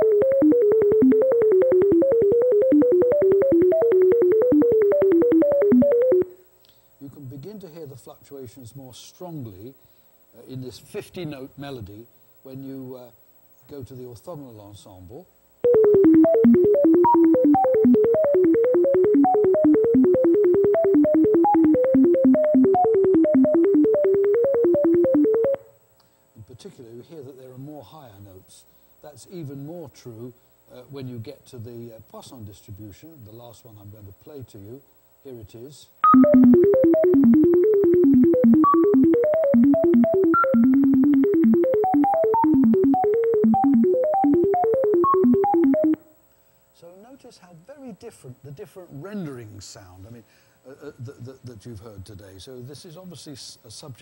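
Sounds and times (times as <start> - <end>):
clicks at note changes: 0.0 - 6.4, 15.6 - 25.7, 36.0 - 46.0
sine tone melody: 0.0 - 6.4, 15.6 - 25.7, 36.0 - 46.0.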